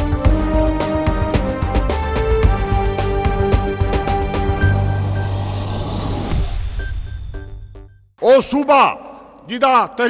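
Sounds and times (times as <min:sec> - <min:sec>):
held low bass note: 0:02.5 - 0:06.5
rushing whoosh: 0:02.6 - 0:07.2.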